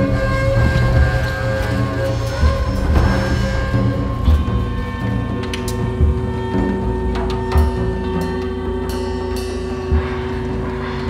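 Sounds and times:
low drum rumble: 0.0s - 11.0s
sharp percussion strikes: 0.0s - 11.0s.

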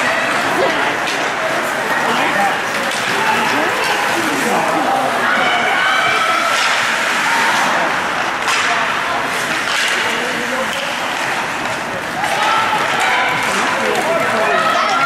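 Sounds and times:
hockey sticks knocking puck: 0.2s - 4.4s, 6.4s - 15.0s.

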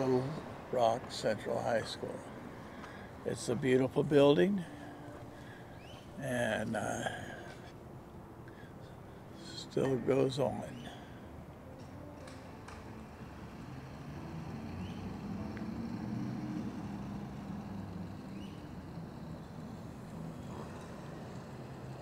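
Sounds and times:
vehicle engine passing: 12.4s - 22.0s.

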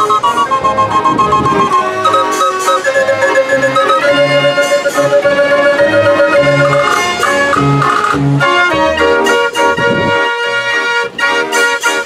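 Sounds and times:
street organ playing a tune: 0.0s - 12.0s.

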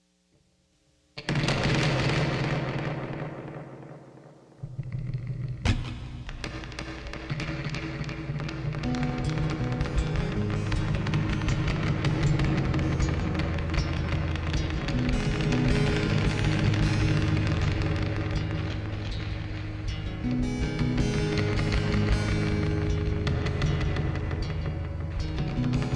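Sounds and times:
acoustic guitar chords: 5.6s - 25.9s
harsh distorted tapping clicks: 6.4s - 25.9s.

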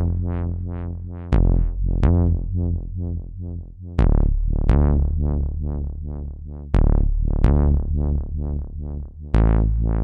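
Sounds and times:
deep bass: 0.0s - 10.0s.

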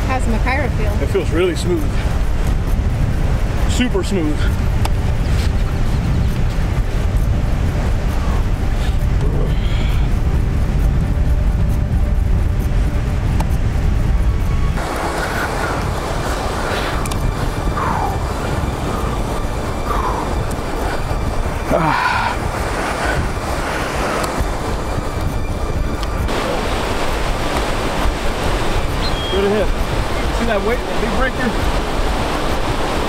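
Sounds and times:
wind buffeting microphone: 0.0s - 33.0s
surf breaking on beach: 14.8s - 25.3s, 26.1s - 33.0s.

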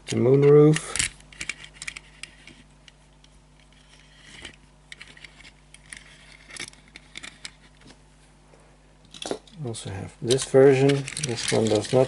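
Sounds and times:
fingertips and wheels scraping: 3.7s - 7.9s.

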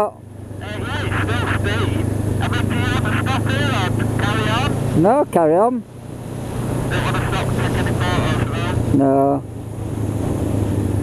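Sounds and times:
voice over intercom: 0.6s - 4.8s, 6.9s - 9.0s.

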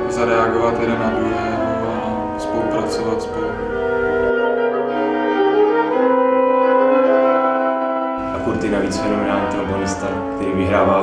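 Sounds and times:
trombone and wind ensemble chords: 0.0s - 11.0s.

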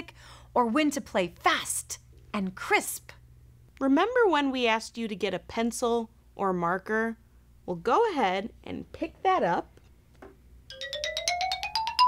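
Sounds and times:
bright bell-like notes: 10.7s - 12.0s.

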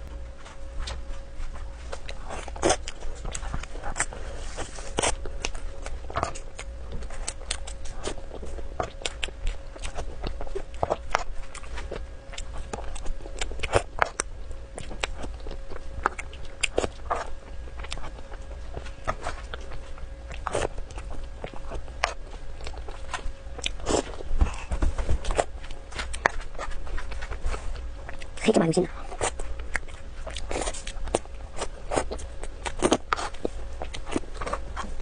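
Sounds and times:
faint steady hum: 0.0s - 35.0s.

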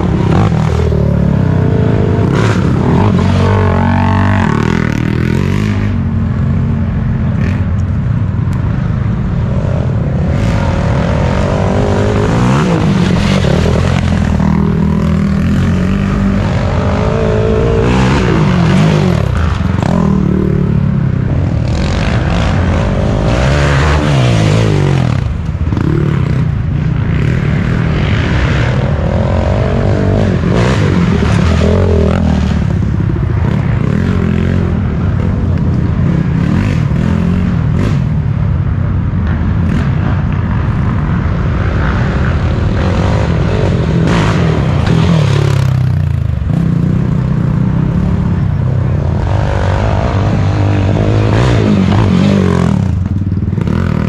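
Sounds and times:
atv engine revving: 0.0s - 8.0s, 8.8s - 38.3s, 39.2s - 54.0s.

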